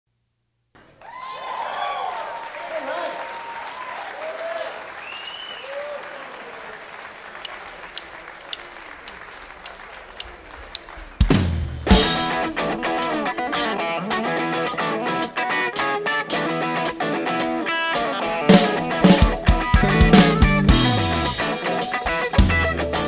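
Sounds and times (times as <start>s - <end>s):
audience applauding and cheering: 0.8s - 13.3s
whistling: 5.0s - 6.4s
drumstick count-in clicks: 7.4s - 11.4s
rock-blues horn band playing: 11.3s - 23.0s.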